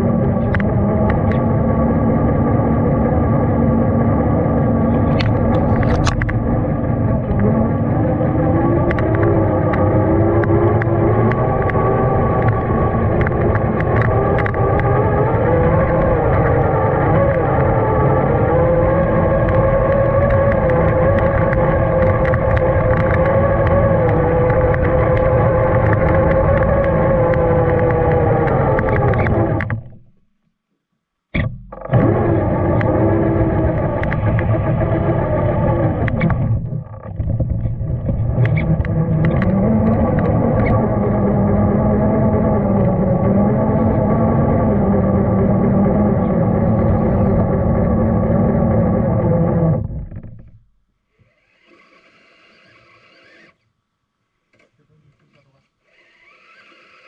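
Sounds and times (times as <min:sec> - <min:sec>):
electric motor whining: 0:00.0 - 0:30.0, 0:31.8 - 0:50.6, 0:51.2 - 0:53.6, 0:55.8 - 0:57.0.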